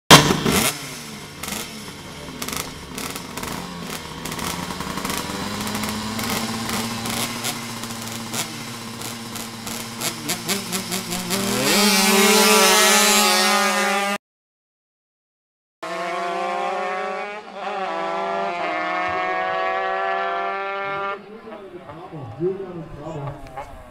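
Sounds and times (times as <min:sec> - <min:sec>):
two-stroke scooter engines revving: 0:00.1 - 0:14.2, 0:15.8 - 0:23.9.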